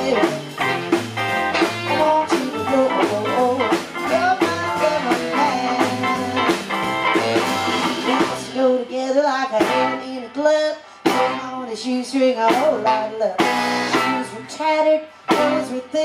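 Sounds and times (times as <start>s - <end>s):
drum beat: 0.0s - 8.4s
electric guitar bending notes: 0.0s - 8.7s
bass line: 0.0s - 10.4s, 11.1s - 16.0s.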